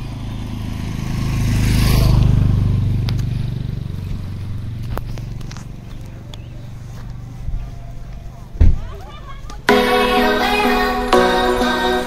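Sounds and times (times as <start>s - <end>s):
motorcycle passing by: 0.0s - 8.6s.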